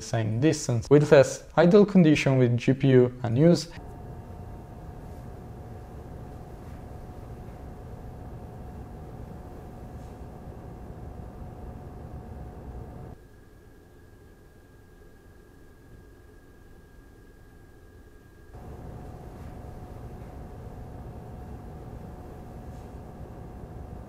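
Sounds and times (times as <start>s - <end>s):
fans whirring: 3.3s - 13.2s, 18.5s - 24.0s.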